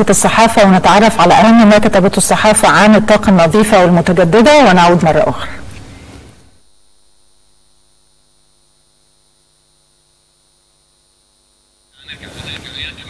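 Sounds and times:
faint electrical hum: 0:00.0 - 0:13.0
faint high whine: 0:00.0 - 0:13.0.

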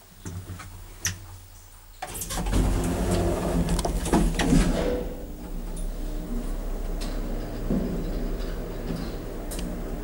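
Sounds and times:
elevator machine hum: 0:02.2 - 0:10.0.

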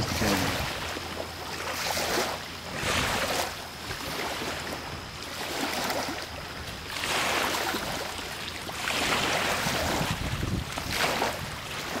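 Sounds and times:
rushing noise in waves: 0:00.0 - 0:12.0.

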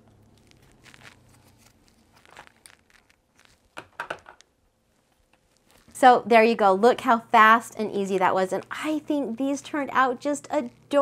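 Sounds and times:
cellophane bag crinkling: 0:00.0 - 0:03.9, 0:05.2 - 0:06.0.

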